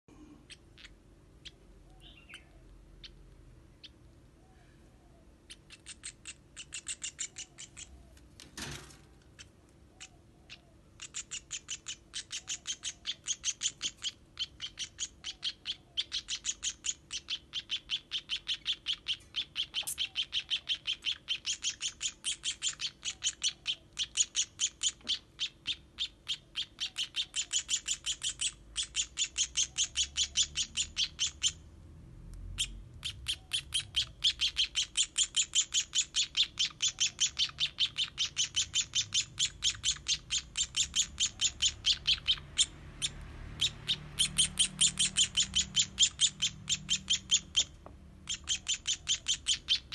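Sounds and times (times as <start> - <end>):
baby sparrow chirping: 0.4 - 8.2, 9.4 - 31.7, 32.5 - 49.9.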